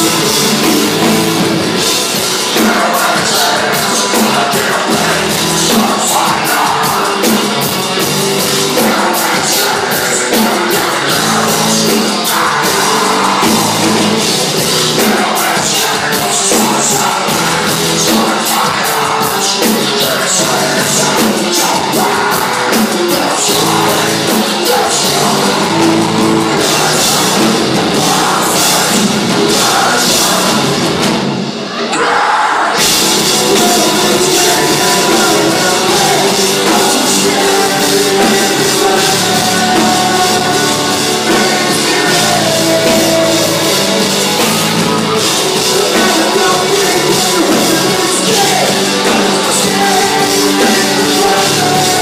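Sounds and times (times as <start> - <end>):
drum kit: 0.0 - 52.0
electric guitar: 0.0 - 52.0
person singing: 0.0 - 52.0.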